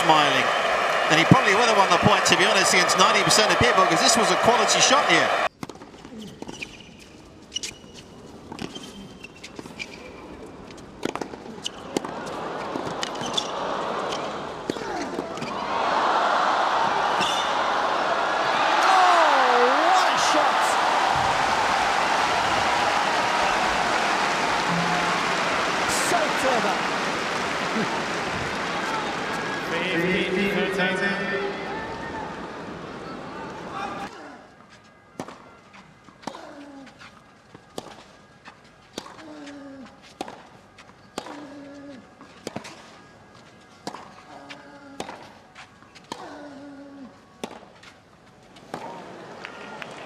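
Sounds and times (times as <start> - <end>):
crowd cheering: 0.0 - 5.5, 11.9 - 34.1, 48.7 - 50.0
spectator shouting: 0.0 - 5.5, 15.8 - 32.4
racket striking tennis ball: 24.7 - 25.9.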